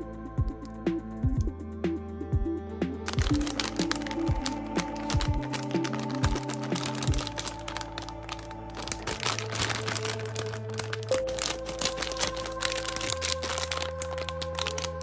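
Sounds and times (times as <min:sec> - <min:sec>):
background music of held notes: 0:00.0 - 0:15.0
plastic bag crinkling: 0:03.1 - 0:15.0.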